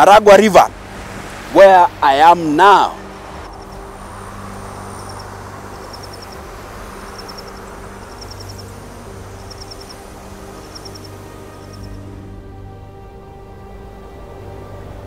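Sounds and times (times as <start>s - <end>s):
high chirps: 3.4s - 3.9s, 4.8s - 12.0s.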